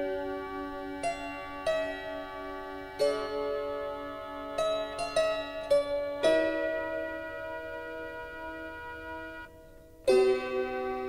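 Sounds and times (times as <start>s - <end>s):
slow harp chords: 0.0s - 11.0s.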